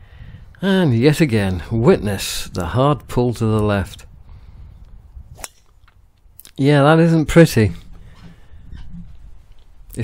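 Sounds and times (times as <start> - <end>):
golf club striking ball: 5.3 - 6.0.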